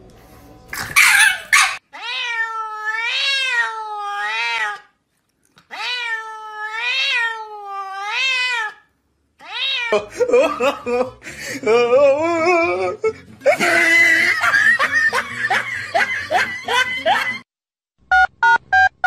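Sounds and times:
cat meowing: 1.9s - 4.9s, 5.7s - 10.1s.

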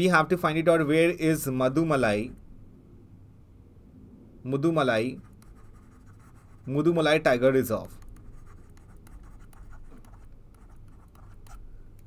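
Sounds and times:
steady low hum: 0.0s - 12.0s
stylus scratching on pen tablet: 5.2s - 7.1s, 7.8s - 12.0s.

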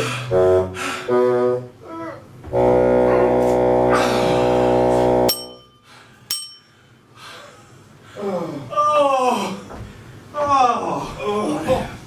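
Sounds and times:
loud held drone note: 2.5s - 5.6s
sharp metallic clinks: 5.3s - 6.7s.

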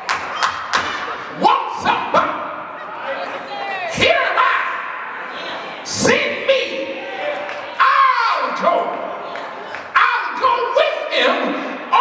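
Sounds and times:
preacher shouting exclamations: 5.9s - 9.1s.

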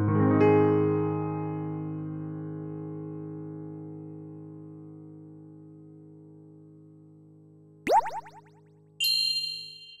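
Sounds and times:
rising swoop effect with echoes: 7.9s - 8.5s.

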